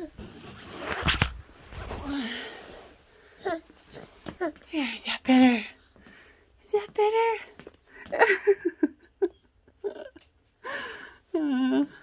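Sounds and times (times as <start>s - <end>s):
fabric rustling: 0.0s - 3.2s.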